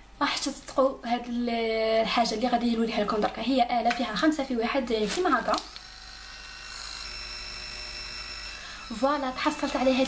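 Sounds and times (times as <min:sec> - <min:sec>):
facial brush motor whine: 0:04.9 - 0:10.0.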